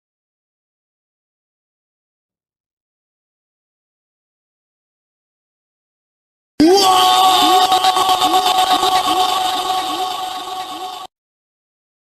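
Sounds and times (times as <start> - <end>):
steady high electronic tones: 6.9 - 11.1.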